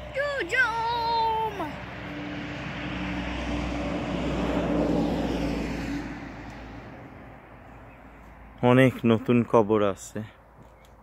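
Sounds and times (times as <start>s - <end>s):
vehicle passing by: 0.0s - 9.6s.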